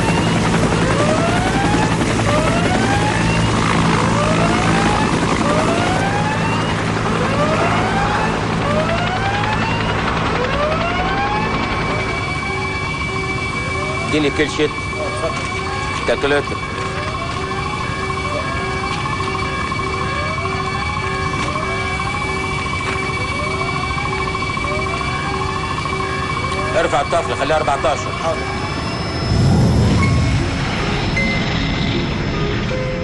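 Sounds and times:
whooping emergency alarm: 0.0s - 31.6s
steady alarm tones: 0.0s - 33.0s
low rumble: 29.0s - 32.7s.

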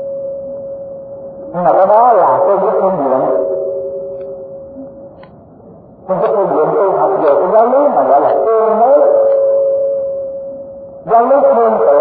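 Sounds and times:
person chanting: 1.4s - 3.5s
bowl bell ringing: 3.3s - 5.1s, 9.2s - 11.0s.

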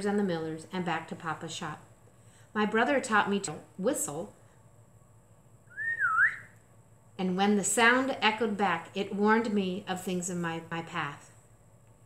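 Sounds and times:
woman whistling: 5.7s - 6.5s.

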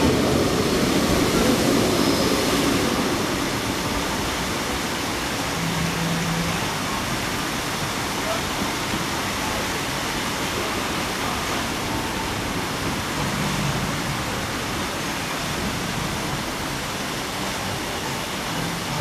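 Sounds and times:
water fountain jets splashing: 0.0s - 19.0s.

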